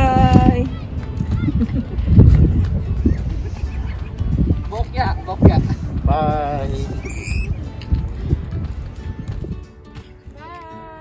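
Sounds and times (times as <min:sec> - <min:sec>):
wind rumbling on microphone: 0:00.0 - 0:10.4.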